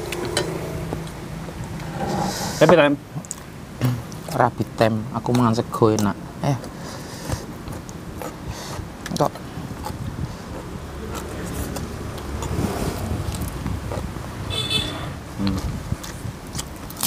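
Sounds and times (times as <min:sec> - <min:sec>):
vehicle passing rumble: 0:00.0 - 0:04.3, 0:06.2 - 0:16.5
chewing vegetable stalk: 0:05.2 - 0:14.1, 0:15.4 - 0:17.0.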